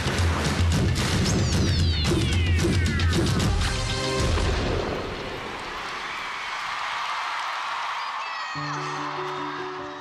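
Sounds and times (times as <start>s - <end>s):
crowd cheering and screaming: 5.6s - 10.0s.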